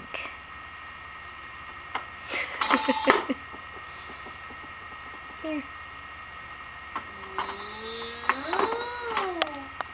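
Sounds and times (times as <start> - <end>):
electronic toy cow mooing: 2.6 - 3.3, 7.1 - 9.7.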